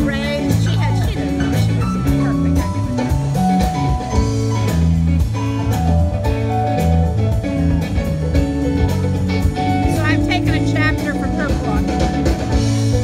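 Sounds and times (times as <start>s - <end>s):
drum beat: 0.0s - 13.0s
electric guitar: 0.0s - 13.0s.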